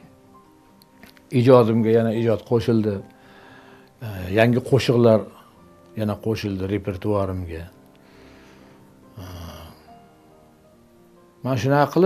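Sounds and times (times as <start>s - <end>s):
soft background music: 0.0s - 12.0s
man breathing: 3.2s - 4.0s, 8.0s - 9.9s.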